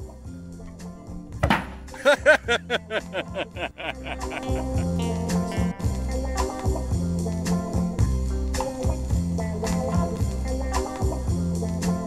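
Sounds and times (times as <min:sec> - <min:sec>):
background music: 0:00.0 - 0:12.0
potato cannon bang: 0:01.4 - 0:01.9.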